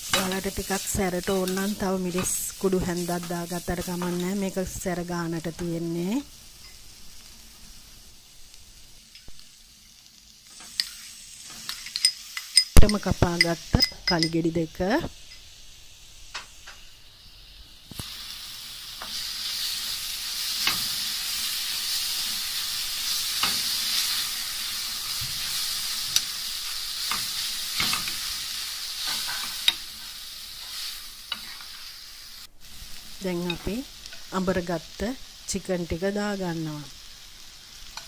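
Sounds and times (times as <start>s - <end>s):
vegetables sizzling in hot oil: 0.0s - 38.0s
metal spoon scraping a pan: 10.5s - 14.4s, 19.0s - 31.9s.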